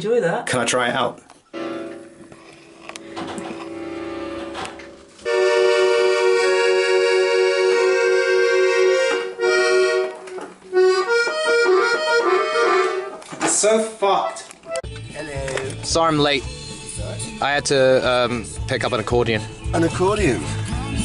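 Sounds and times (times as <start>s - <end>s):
accordion chords: 1.6s - 2.3s, 2.9s - 13.3s, 14.1s - 21.0s.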